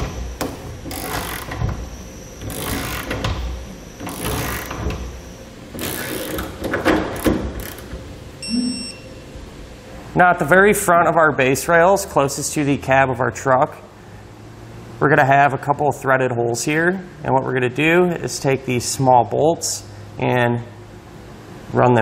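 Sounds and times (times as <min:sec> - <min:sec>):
torque wrench ratcheting: 0:00.9 - 0:01.6, 0:02.5 - 0:03.2, 0:05.8 - 0:06.5, 0:07.2 - 0:07.9
brief ringing tone: 0:08.4 - 0:09.3.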